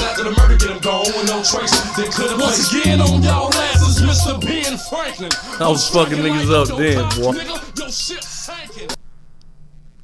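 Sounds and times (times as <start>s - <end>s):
rapping over a beat: 0.0s - 9.0s
sharp percussion hits: 2.8s - 4.8s.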